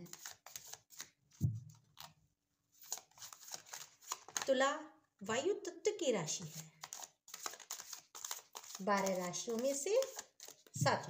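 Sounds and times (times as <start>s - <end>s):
cards being shuffled by hand: 0.0s - 2.2s, 2.8s - 4.5s, 6.4s - 11.0s.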